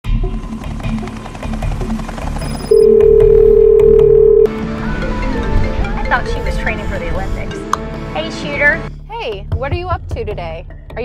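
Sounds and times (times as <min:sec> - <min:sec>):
telephone ringback tone: 0:02.4 - 0:04.5.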